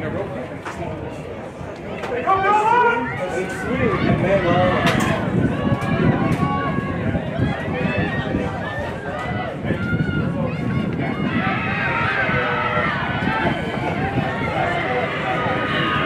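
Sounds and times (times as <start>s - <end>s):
people talking at once: 0.0s - 16.0s.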